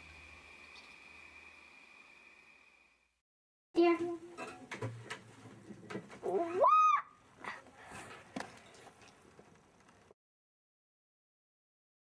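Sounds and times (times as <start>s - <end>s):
young child squealing: 6.3s - 7.2s.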